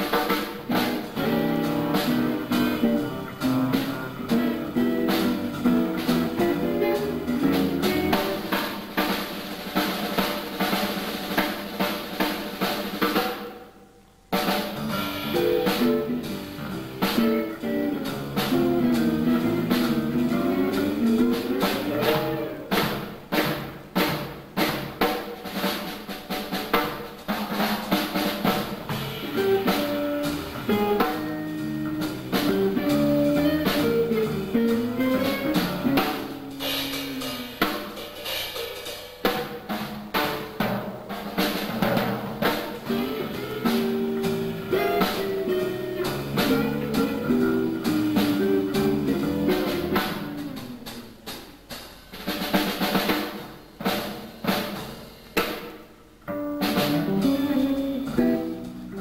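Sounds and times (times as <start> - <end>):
archtop guitar: 0.0 - 13.4, 14.4 - 23.6, 27.8 - 51.5, 55.4 - 59.0
drum kit playing: 0.0 - 59.0
upright double bass: 0.7 - 8.5, 14.7 - 23.0, 28.9 - 37.4, 42.8 - 51.0, 56.4 - 59.0.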